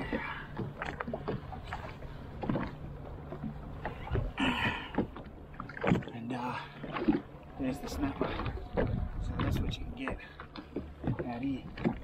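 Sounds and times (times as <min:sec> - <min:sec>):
waves slapping against hull: 0:00.0 - 0:12.0.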